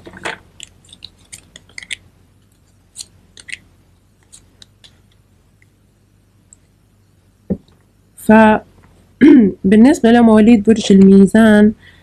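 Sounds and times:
cards clicking in hand: 0.6s - 3.6s.

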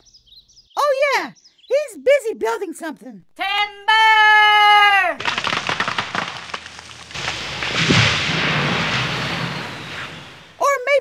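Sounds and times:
heavy crash with low thump: 5.2s - 10.6s
rustling: 5.2s - 10.6s
tree cracking and splintering: 5.2s - 10.6s.

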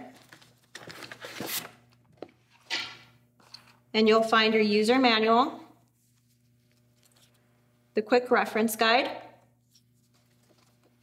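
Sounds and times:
cardboard and paper rustling: 0.0s - 2.6s, 9.7s - 11.0s.

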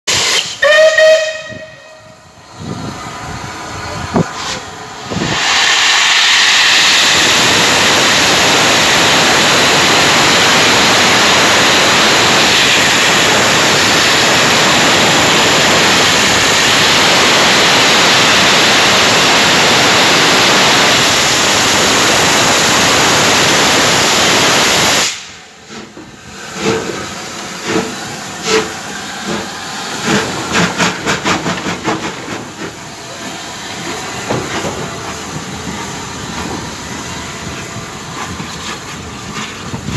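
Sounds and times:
steam locomotive whistle: 0.1s - 2.3s
steam hissing: 0.1s - 39.9s
locomotive chuffing beats: 25.6s - 39.9s.

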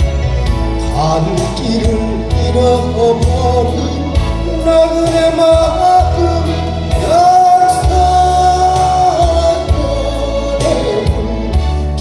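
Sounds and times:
band with bass and drums: 0.0s - 12.0s
man singing into microphone: 0.8s - 12.0s.

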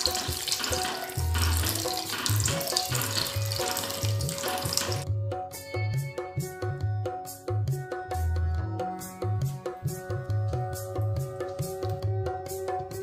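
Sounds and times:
liquid pouring and splashing: 0.0s - 5.0s
background music with low beat: 0.0s - 13.0s.

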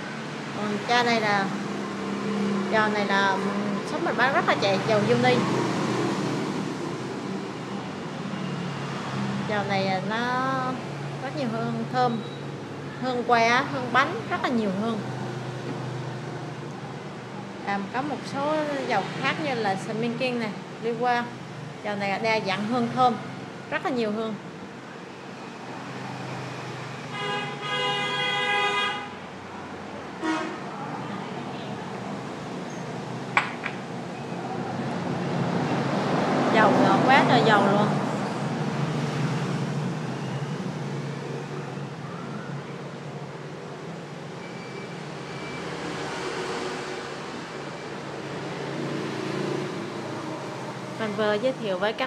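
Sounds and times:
traffic hum: 0.0s - 52.0s
vehicle horn honking: 27.1s - 29.2s, 30.2s - 30.6s.

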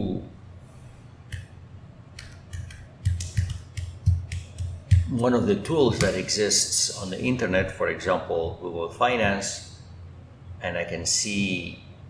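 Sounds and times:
typing on computer keyboard: 2.2s - 6.2s.

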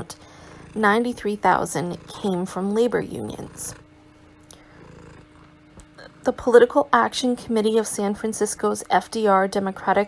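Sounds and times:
low rumble with faint hum: 0.0s - 10.0s.

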